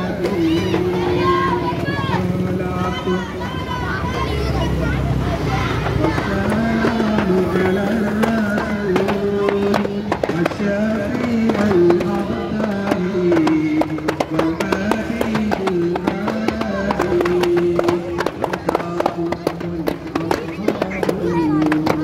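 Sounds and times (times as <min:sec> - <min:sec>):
voices singing devotional chant: 0:00.0 - 0:22.0.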